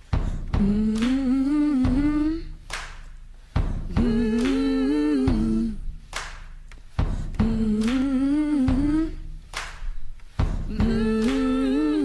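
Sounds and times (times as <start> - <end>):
person humming a tune: 0.3 - 2.6, 3.9 - 5.9, 7.3 - 9.3, 10.6 - 12.0.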